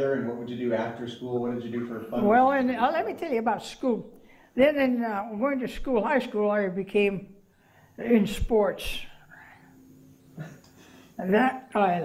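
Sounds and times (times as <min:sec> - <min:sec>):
faint room hum: 0:00.0 - 0:12.0
woman breathing softly: 0:07.5 - 0:08.0, 0:10.7 - 0:11.2.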